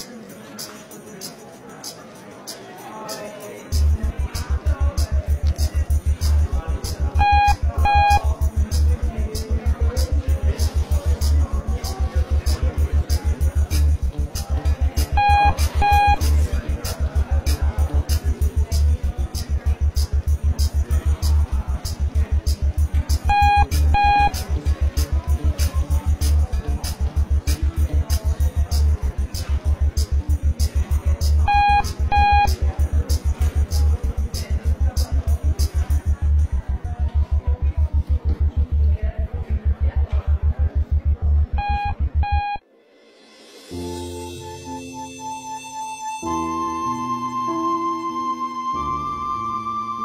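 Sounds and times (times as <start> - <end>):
music with low pulsing beat: 3.7 - 42.6
lift overload warning beeps: 5.7 - 13.0, 14.4 - 17.8, 23.2 - 24.8, 30.8 - 33.4, 41.5 - 42.6.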